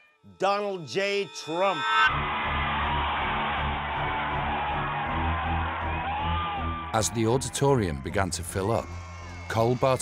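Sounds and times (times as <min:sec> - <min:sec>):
loud music: 0:01.2 - 0:07.6
crowd cheering: 0:02.1 - 0:10.0.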